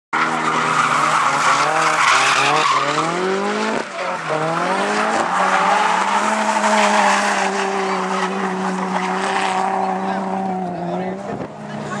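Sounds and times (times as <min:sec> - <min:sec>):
tyres screeching on tarmac: 0:00.2 - 0:10.8
car engine at high revs: 0:00.2 - 0:12.0.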